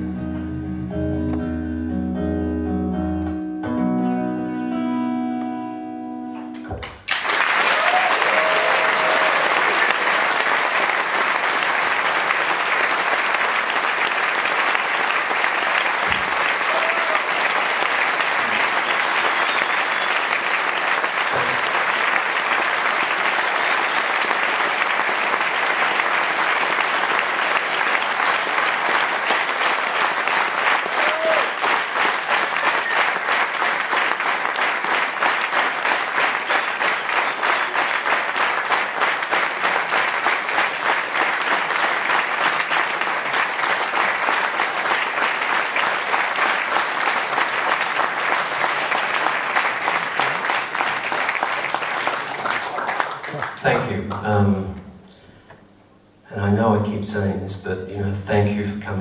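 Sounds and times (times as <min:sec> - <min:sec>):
audience applauding: 0:06.8 - 0:54.3
crowd calling out: 0:07.5 - 0:10.5, 0:16.0 - 0:17.8, 0:30.8 - 0:31.7.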